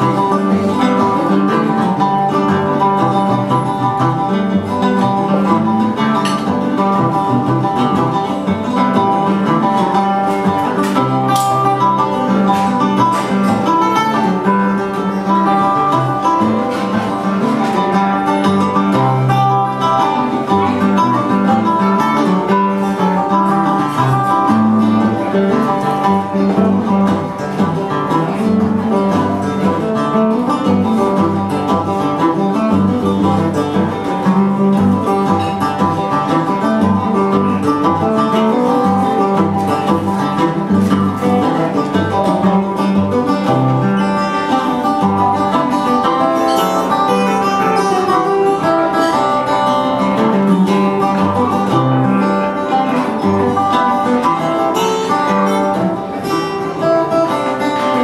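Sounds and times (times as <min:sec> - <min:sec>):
acoustic guitar: 0:00.0 - 0:58.0
bouzouki playing folk tune: 0:00.0 - 0:58.0.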